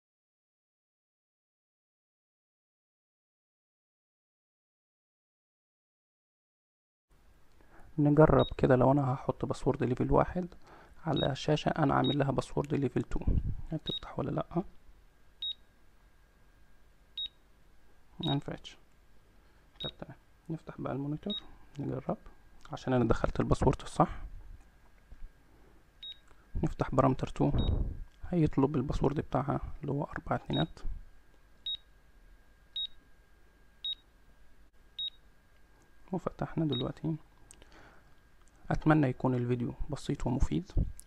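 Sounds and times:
short high key-press beeps: 0:15.4 - 0:15.6, 0:19.8 - 0:20.0, 0:26.0 - 0:26.2, 0:27.6 - 0:27.8, 0:31.6 - 0:31.8, 0:32.8 - 0:33.0, 0:33.8 - 0:34.0, 0:35.0 - 0:35.2.

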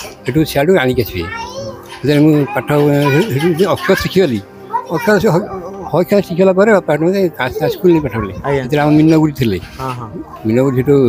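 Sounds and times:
child's high voice: 0:01.2 - 0:04.1, 0:04.7 - 0:05.6, 0:07.5 - 0:08.6
man speaking: 0:10.4 - 0:11.0.

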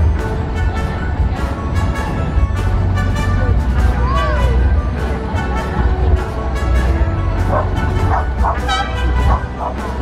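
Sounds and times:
crowd chatter: 0:00.0 - 0:10.0
music: 0:00.0 - 0:10.0
dog barking: 0:07.5 - 0:10.0.

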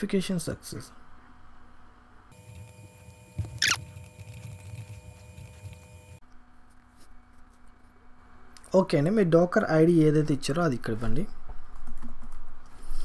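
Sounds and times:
background hum: 0:00.0 - 0:13.0.

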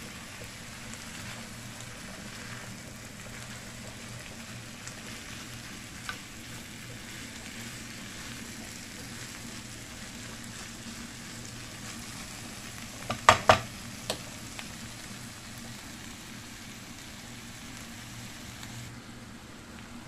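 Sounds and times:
food sizzling in a frying pan: 0:00.0 - 0:20.0
spatula knocking on pan: 0:13.0 - 0:14.2.

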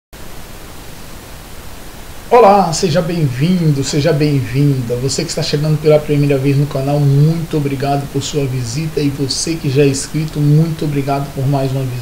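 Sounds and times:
recording background hiss: 0:00.2 - 0:12.0.

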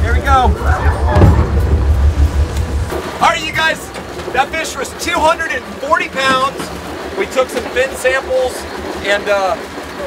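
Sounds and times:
boat engine idling: 0:00.0 - 0:10.0.

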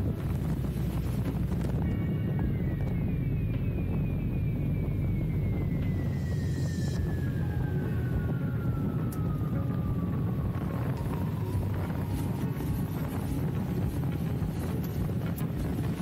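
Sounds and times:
thin whine falling in pitch: 0:00.0 - 0:16.0
wind and motorcycle noise: 0:00.0 - 0:16.0.

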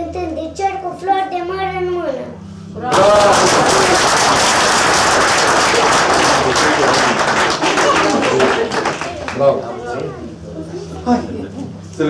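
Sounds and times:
crowd clapping: 0:02.8 - 0:09.8.

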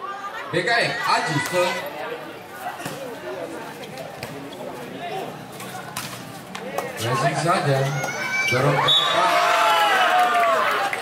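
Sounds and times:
crowd talking and calling out: 0:00.0 - 0:11.0.

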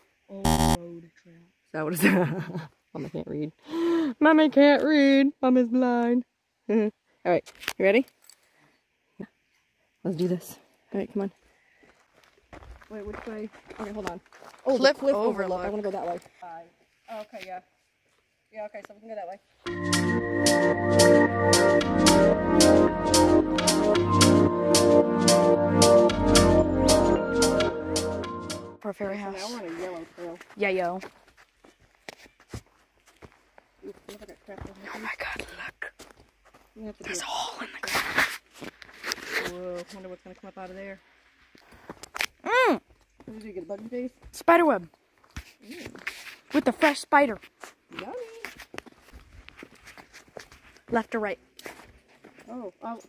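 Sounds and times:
faint steady high hiss: 0:00.0 - 0:12.3, 0:14.7 - 0:19.7, 0:36.9 - 0:44.0
footsteps on forest trail: 0:11.3 - 0:17.4, 0:29.0 - 0:36.9, 0:41.4 - 0:42.2, 0:42.9 - 0:52.8.

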